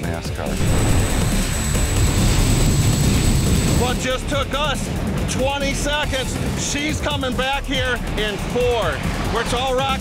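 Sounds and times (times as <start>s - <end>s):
jet engine roaring with high whine: 0.6s - 6.6s
man's voice: 3.8s - 10.0s.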